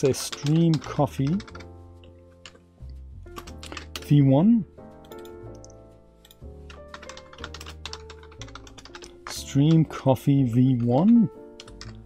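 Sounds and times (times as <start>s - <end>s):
keyboard typing: 0.0s - 4.2s, 5.0s - 12.0s
soft background music: 0.0s - 12.0s.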